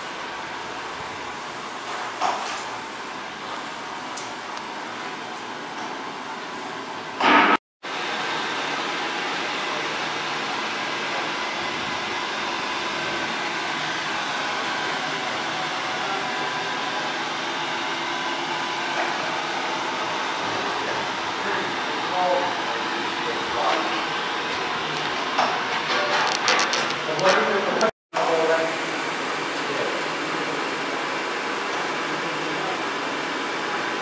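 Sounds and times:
boiler fan and motors whirring: 0.0 - 34.0.

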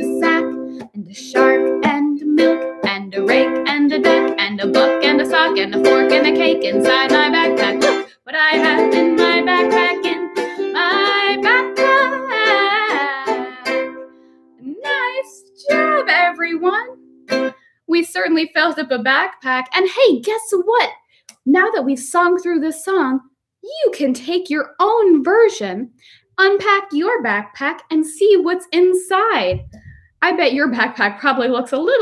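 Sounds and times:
woman singing: 0.0 - 14.0, 14.6 - 17.0
strummed ukulele: 0.0 - 17.6.

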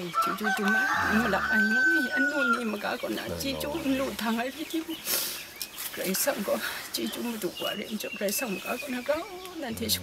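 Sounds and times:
rooster crowing: 0.2 - 2.6.

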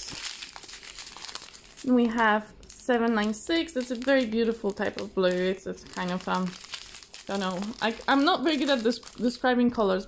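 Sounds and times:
plastic bags crinkling: 0.0 - 9.6.

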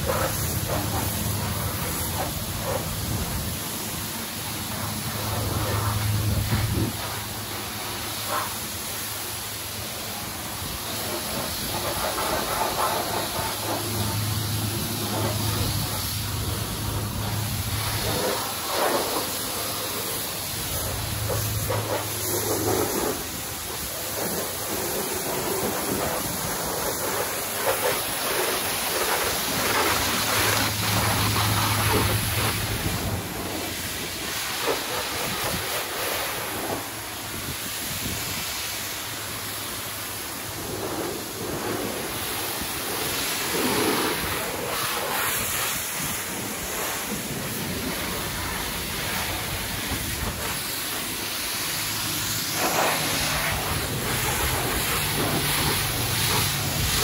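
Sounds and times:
pressure washer spraying water: 0.0 - 57.0.

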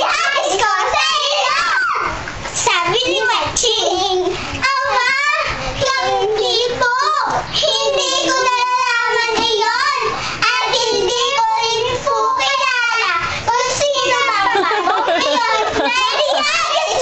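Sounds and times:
young girls singing together: 0.0 - 17.0.

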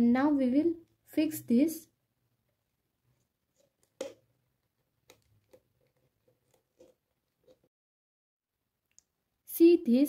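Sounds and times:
balloon stretched over plastic jar: 3.0 - 7.7.

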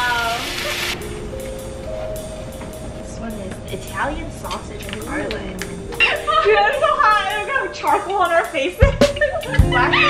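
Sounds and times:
bright hiss: 0.0 - 8.7
soft background music: 0.4 - 10.0.

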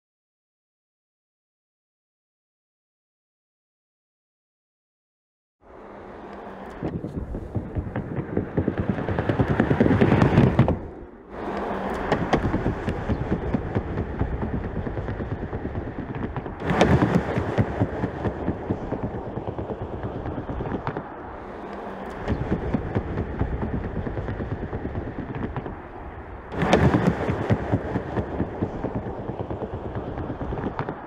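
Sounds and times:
tyre and road noise: 5.6 - 31.0
rapid clatter and knocks: 6.8 - 21.2, 21.8 - 31.0.

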